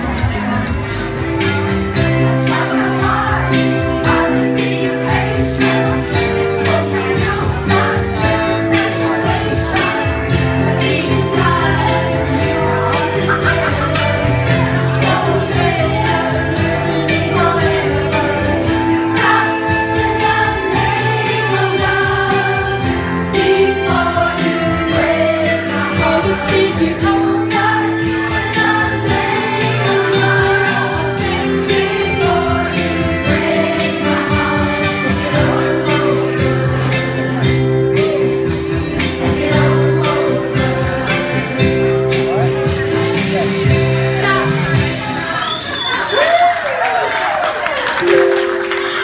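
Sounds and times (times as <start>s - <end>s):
karaoke backing track: 0.0s - 49.0s
women singing along: 2.2s - 37.3s, 39.0s - 41.9s.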